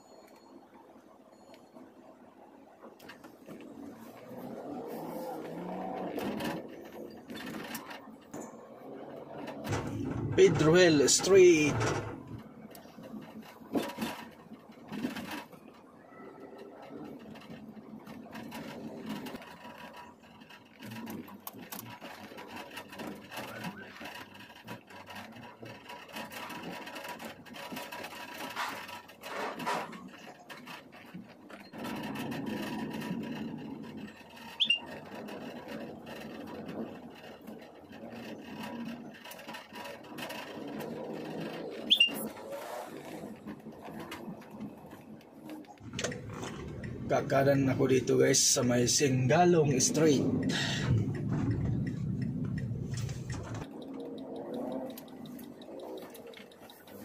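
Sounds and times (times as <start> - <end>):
traffic and street noise: 0.0 - 57.0.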